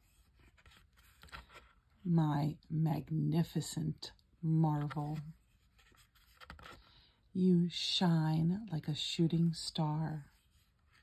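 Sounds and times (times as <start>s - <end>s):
stiff book page turning: 0.2s - 1.8s, 4.8s - 6.9s
person speaking: 2.0s - 5.4s.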